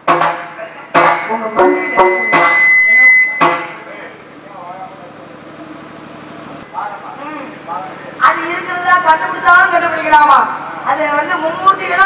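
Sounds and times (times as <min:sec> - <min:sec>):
sharp percussion strokes: 0:00.0 - 0:03.9
held high tone: 0:01.0 - 0:03.9
stage band music: 0:01.0 - 0:03.9.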